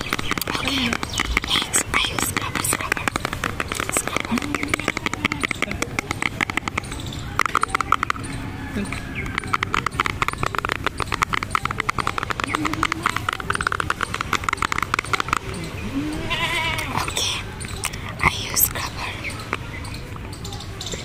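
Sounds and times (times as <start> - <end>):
fingernails tapping on plastic jar: 0.0 - 15.6.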